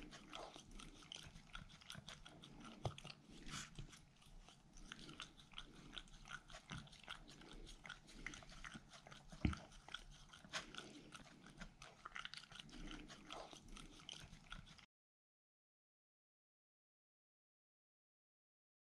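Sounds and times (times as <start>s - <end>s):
dog chewing and licking: 0.0s - 14.9s.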